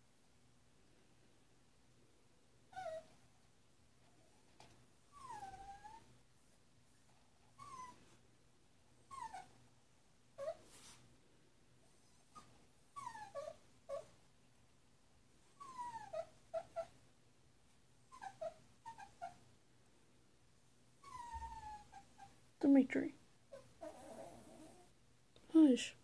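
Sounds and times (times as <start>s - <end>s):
puppy whining and yelping: 2.7s - 3.3s, 5.1s - 6.2s, 7.5s - 8.2s, 9.0s - 9.6s, 10.4s - 11.0s, 12.0s - 14.2s, 15.5s - 17.0s, 18.1s - 19.4s, 21.0s - 22.4s, 23.5s - 24.9s.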